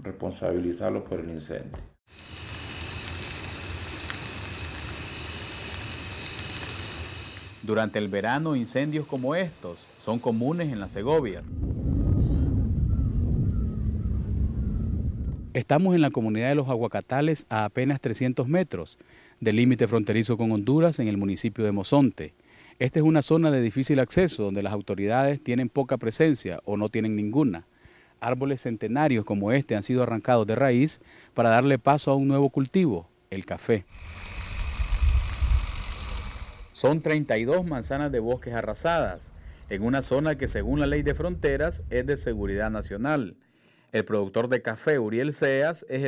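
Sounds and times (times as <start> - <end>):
brush fire rumbling: 2.1 - 8.1, 10.9 - 15.6, 33.9 - 36.8, 37.5 - 43.0
wind buffeting microphone: 11.0 - 15.6, 34.2 - 36.6, 37.6 - 43.0
faint bird calls: 12.8 - 15.0.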